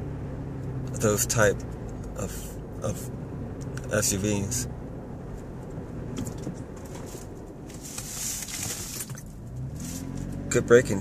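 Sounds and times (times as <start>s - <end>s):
car cabin engine and road rumble: 0.0s - 11.0s.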